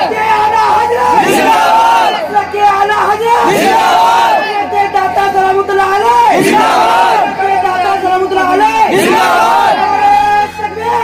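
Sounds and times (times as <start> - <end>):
voices chanting over loudspeakers: 0.0 - 11.0.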